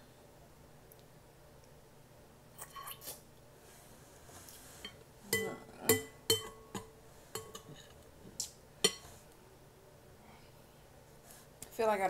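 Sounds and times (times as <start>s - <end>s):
metal spoon clinking against glass bowl: 5.3s - 7.7s.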